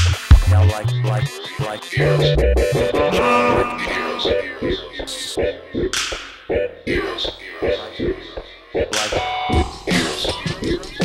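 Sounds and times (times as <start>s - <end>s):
hip-hop drum beat: 0.2s - 0.7s, 3.8s - 11.0s.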